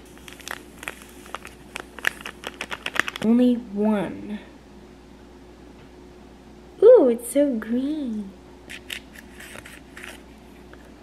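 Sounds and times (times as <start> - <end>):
powder pouring into tray: 0.0 - 3.3
plastic sachet crinkling: 0.0 - 3.4.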